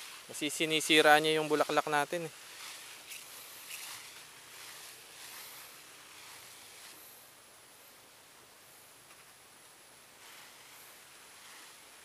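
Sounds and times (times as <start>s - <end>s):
pressure sprayer nozzle hiss: 0.0s - 7.3s, 10.2s - 12.0s.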